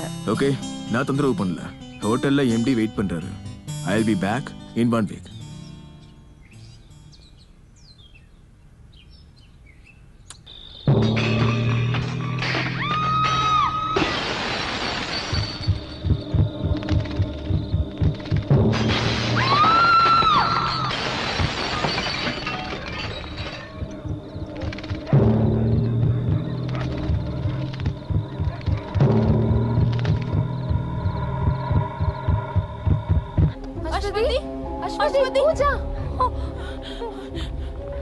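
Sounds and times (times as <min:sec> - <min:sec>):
heartbeat thumps: 0:15.3 - 0:18.9, 0:23.7 - 0:34.1
synthesizer drone: 0:23.8 - 0:33.9.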